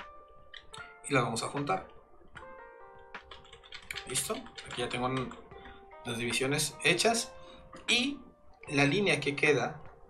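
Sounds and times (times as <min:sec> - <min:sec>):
soft background music: 0:00.0 - 0:10.0
computer keyboard clicks: 0:00.5 - 0:01.7, 0:02.3 - 0:05.4.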